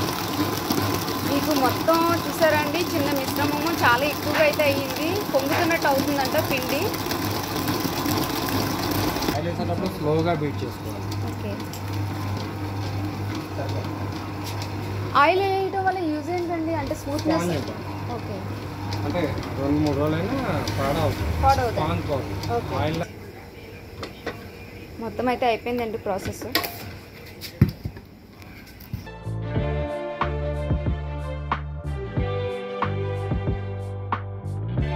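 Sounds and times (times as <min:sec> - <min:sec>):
whisk beating batter in steel bowl: 0:00.0 - 0:17.8
stand mixer motor hum: 0:00.0 - 0:23.1.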